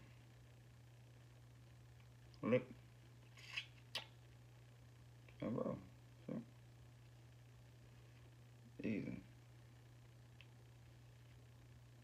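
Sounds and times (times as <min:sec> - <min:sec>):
low steady hum: 0:00.0 - 0:12.0
lip click: 0:03.5 - 0:04.2.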